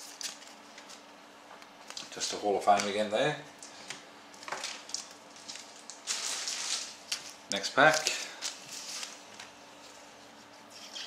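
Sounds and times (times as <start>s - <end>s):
card packets rustling: 4.4s - 10.1s.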